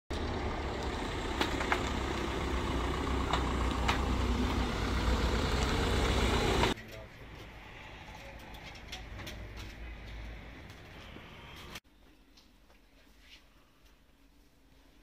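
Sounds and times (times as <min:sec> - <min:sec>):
van engine rumbling: 0:00.1 - 0:11.8.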